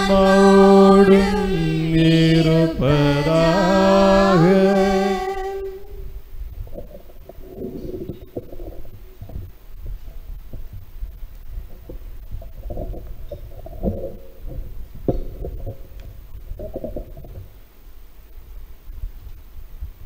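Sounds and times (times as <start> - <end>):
low irregular rumbling: 0.0 - 20.0.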